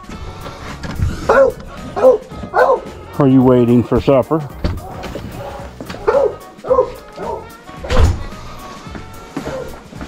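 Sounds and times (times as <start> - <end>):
background music: 0.0 - 10.0
dog barking: 1.2 - 2.9, 4.9 - 8.0, 9.4 - 9.8
heavy thump: 4.6 - 5.2, 7.8 - 8.4.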